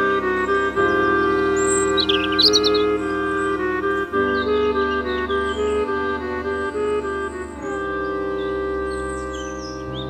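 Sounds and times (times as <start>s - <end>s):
slow ambient music: 0.0s - 10.0s
high bird chirps: 0.5s - 5.9s.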